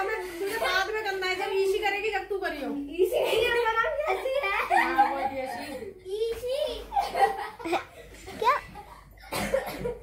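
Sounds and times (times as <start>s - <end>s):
laughter: 3.2s - 5.7s, 6.9s - 10.0s
girl coughing: 9.2s - 10.0s.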